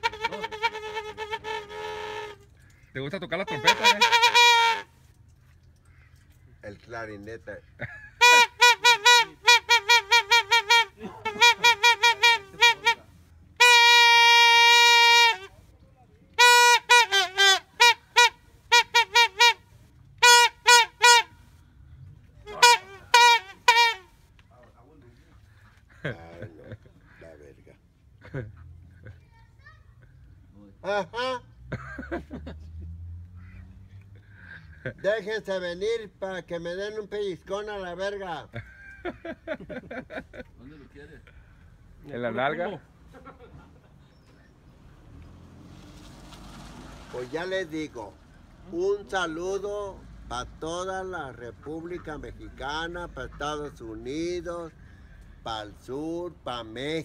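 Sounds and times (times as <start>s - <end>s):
toy trumpet buzzing tone: 0.0s - 2.5s, 3.5s - 4.9s, 8.2s - 13.0s, 20.2s - 21.3s, 22.5s - 24.1s
plastic toy horn toots: 16.4s - 19.6s, 20.2s - 21.3s, 22.5s - 24.1s.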